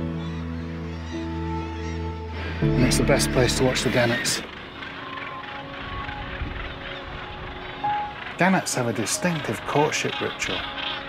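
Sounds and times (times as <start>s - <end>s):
seabirds calling: 0.0s - 11.0s
soft background music: 0.0s - 11.0s.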